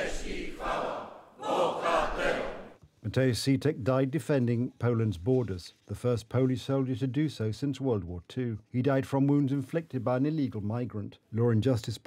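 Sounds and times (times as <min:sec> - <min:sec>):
many voices shouting in unison: 0:00.0 - 0:02.8.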